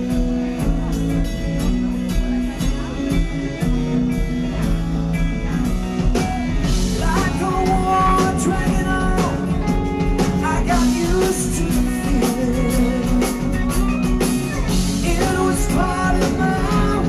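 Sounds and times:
live rock band playing: 0:00.0 - 0:17.0
man singing: 0:06.4 - 0:17.0.

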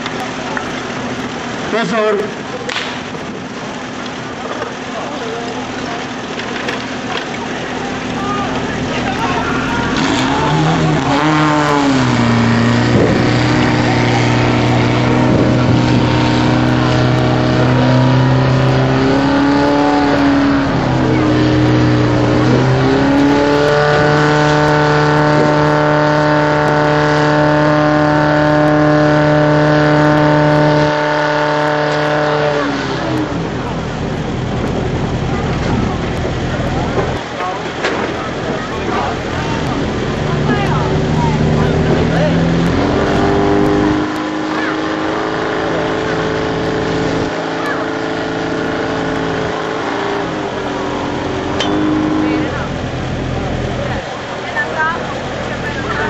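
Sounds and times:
petrol pump engine revving: 0:00.0 - 0:56.0
water through hoses: 0:00.0 - 0:56.0.

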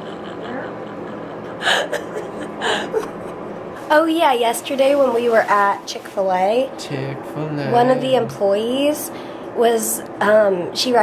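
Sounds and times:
people laughing hard: 0:00.0 - 0:03.2.

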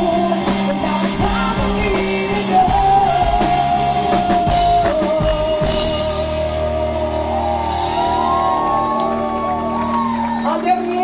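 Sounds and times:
bass: 0:00.0 - 0:11.0
drums: 0:00.0 - 0:11.0
electric guitars: 0:00.0 - 0:11.0.

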